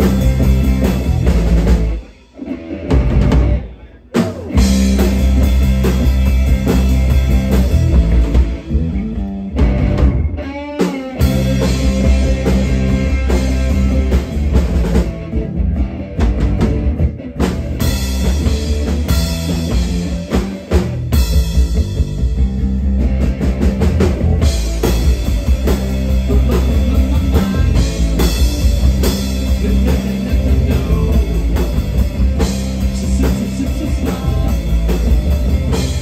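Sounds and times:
drum kit: 0:00.0 - 0:36.0
electric bass: 0:00.0 - 0:36.0
electric guitar: 0:00.0 - 0:36.0.

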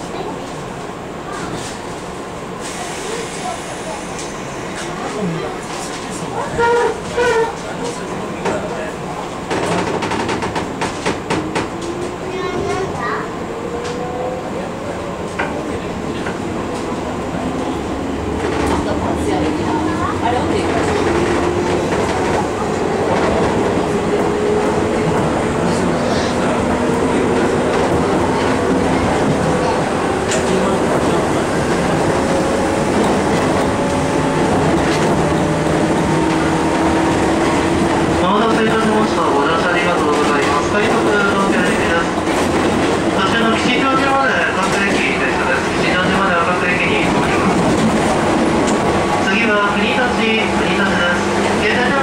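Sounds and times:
train wheels rumbling on rail: 0:00.0 - 0:52.0.

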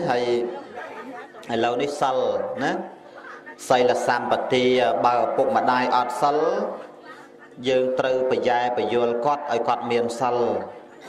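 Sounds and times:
man talking: 0:00.0 - 0:00.7, 0:01.4 - 0:03.0, 0:03.6 - 0:06.8, 0:07.6 - 0:10.8.

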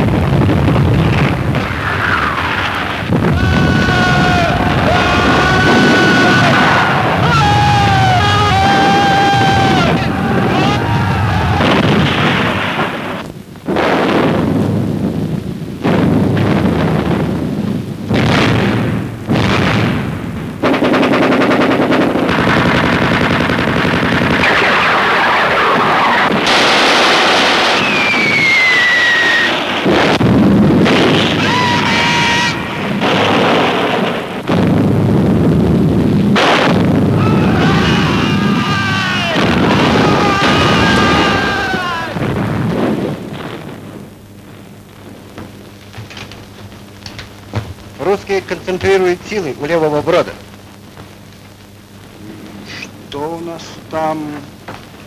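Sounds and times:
explosions: 0:00.0 - 0:50.5
gunfire: 0:11.6 - 0:14.7, 0:15.8 - 0:17.3, 0:18.1 - 0:28.2, 0:29.5 - 0:31.4, 0:32.5 - 0:35.0, 0:36.3 - 0:37.1
machine-gun bursts: 0:20.6 - 0:27.8
falling whistle: 0:27.7 - 0:29.7.

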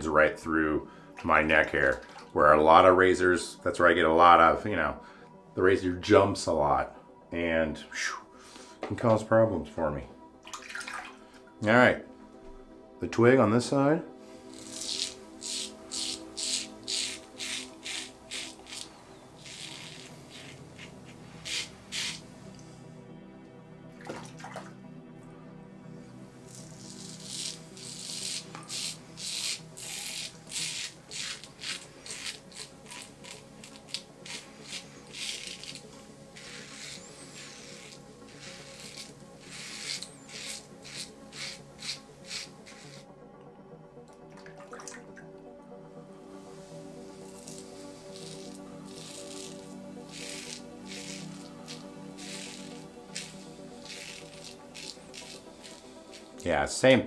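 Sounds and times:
soft background music: 0:00.0 - 0:57.0
razor scraping stubble: 0:14.3 - 0:22.7, 0:26.4 - 0:43.1, 0:46.3 - 0:56.7.

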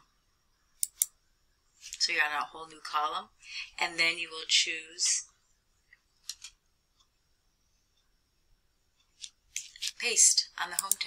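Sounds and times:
computer mouse clicks: 0:00.8 - 0:01.2, 0:06.2 - 0:06.6, 0:10.7 - 0:11.0.

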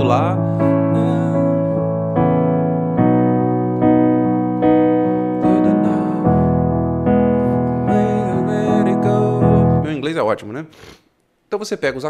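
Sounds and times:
electronic keyboard piano chords: 0:00.0 - 0:10.1.

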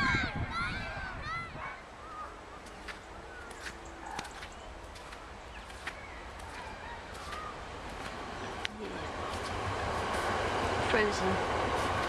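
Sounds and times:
birds calling: 0:01.0 - 0:12.0.

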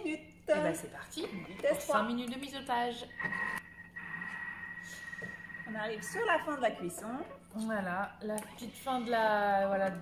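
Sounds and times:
high-pitched electronic tone: 0:03.0 - 0:07.4.

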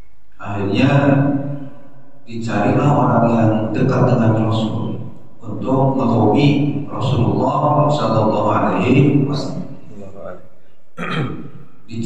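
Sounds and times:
man talking: 0:00.4 - 0:01.3, 0:02.3 - 0:10.4
man clearing throat: 0:11.0 - 0:11.5.

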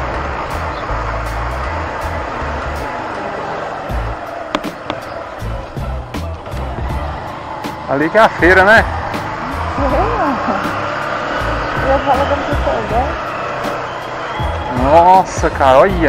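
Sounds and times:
low wind buffeting: 0:00.0 - 0:15.7
wind and road noise rush: 0:00.0 - 0:16.0.

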